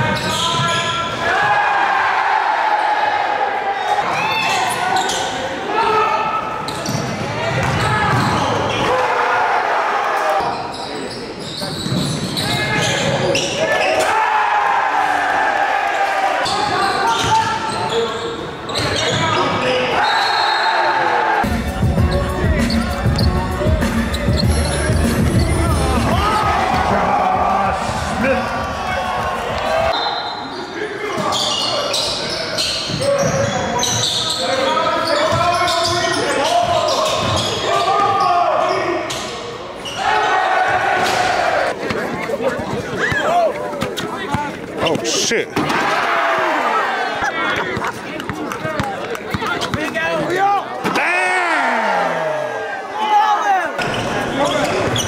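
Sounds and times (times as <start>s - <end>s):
basketballs bouncing on court: 6.7s - 8.8s, 11.7s - 13.4s, 35.3s - 38.2s, 47.6s - 50.2s
people shouting: 25.4s - 30.0s, 50.4s - 53.8s.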